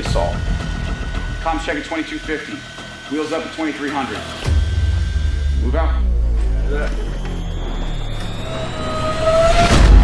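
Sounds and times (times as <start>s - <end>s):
faint rising whine: 0.0s - 10.0s.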